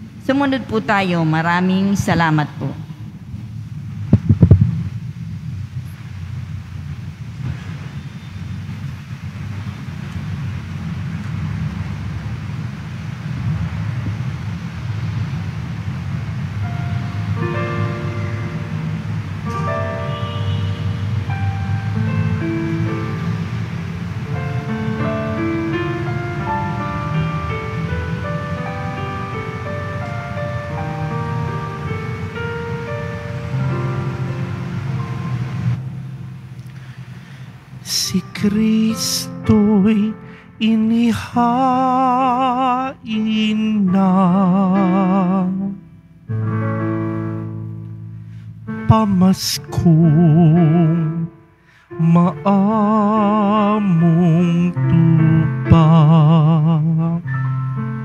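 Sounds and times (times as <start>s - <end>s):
low rumble of room noise: 0.0s - 58.0s
keyboard playing held notes: 16.5s - 58.0s.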